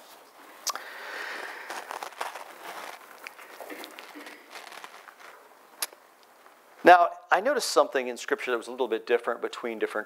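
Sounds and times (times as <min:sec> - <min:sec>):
book pages rustling: 0:01.2 - 0:05.5.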